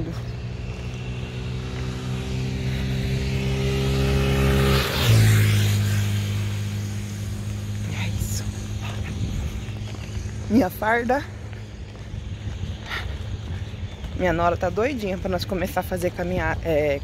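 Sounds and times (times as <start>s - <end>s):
vehicle passing by: 0.0s - 17.0s.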